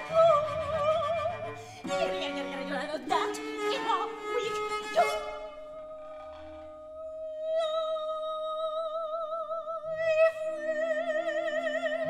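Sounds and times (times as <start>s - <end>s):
chamber opera music: 0.0s - 12.0s.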